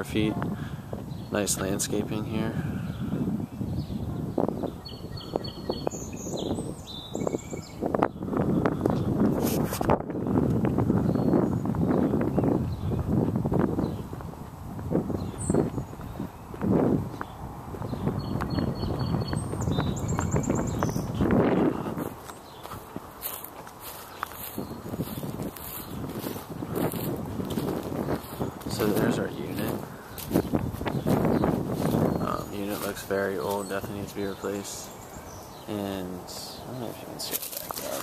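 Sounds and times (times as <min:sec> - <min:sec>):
footsteps on lawn: 0:10.5 - 0:34.1
rustling of dry leaves: 0:19.5 - 0:38.0.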